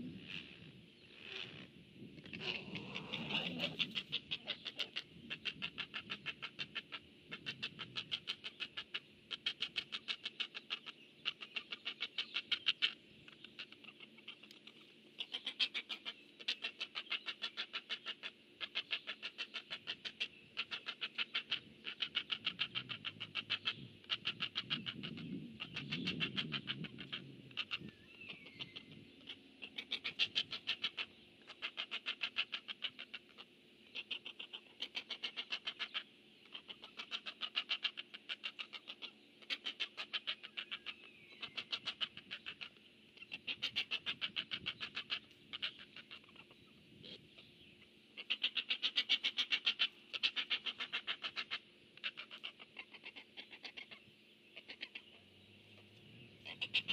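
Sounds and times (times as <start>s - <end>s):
nestlings clicking begging calls: 0.1s - 47.6s, 48.2s - 56.9s.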